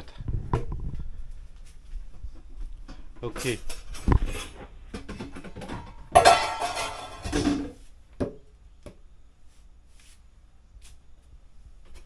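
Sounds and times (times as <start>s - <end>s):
dishes and basins clattering: 2.9s - 7.8s.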